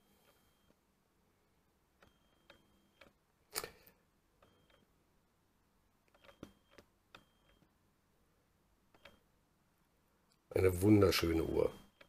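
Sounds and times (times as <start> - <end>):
camera lens clicks and whirs: 6.1 - 7.7.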